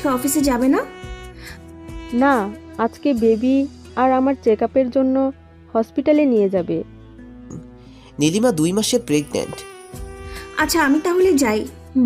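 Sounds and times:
background music: 0:00.0 - 0:12.0
person speaking: 0:07.5 - 0:09.7.

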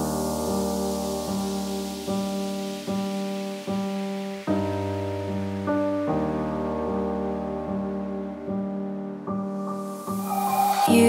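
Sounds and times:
soft hiss: 0:00.0 - 0:07.2.

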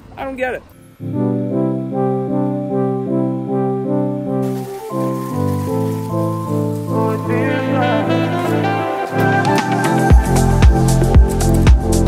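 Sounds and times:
instrumental music with pulsing chords: 0:00.7 - 0:12.0.

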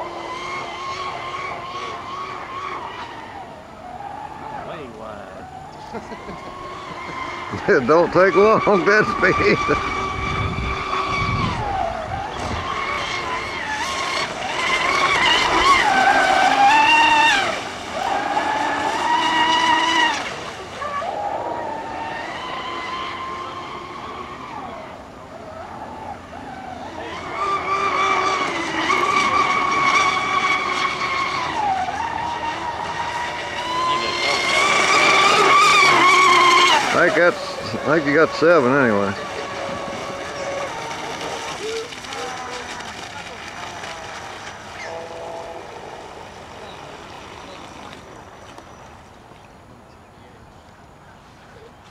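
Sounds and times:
electric motor whining: 0:00.0 - 0:49.3.

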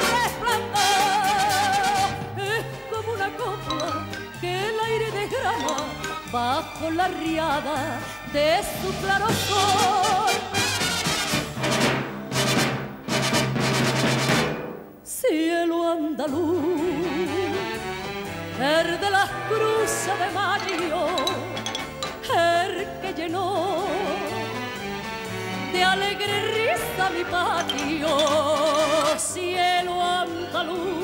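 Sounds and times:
woman singing: 0:00.0 - 0:10.5, 0:15.1 - 0:17.9, 0:18.5 - 0:21.6, 0:22.2 - 0:24.5, 0:25.7 - 0:31.0
band accompaniment: 0:03.4 - 0:15.0, 0:16.8 - 0:23.1, 0:23.8 - 0:30.6
brass and drums chord: 0:10.4 - 0:15.0.

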